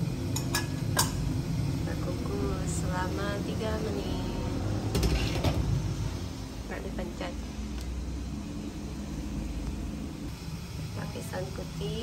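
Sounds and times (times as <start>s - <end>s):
steamer rumbling: 0.0s - 12.0s
cookware clattering: 0.4s - 1.2s.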